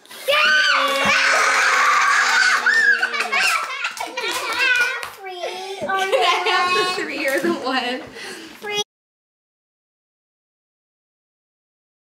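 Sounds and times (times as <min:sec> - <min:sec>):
children's excited voices: 0:00.2 - 0:07.4
hand claps: 0:02.5 - 0:05.2.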